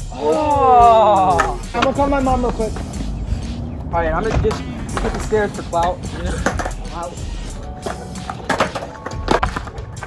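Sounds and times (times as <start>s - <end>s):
young man yelling: 0.1s - 1.9s.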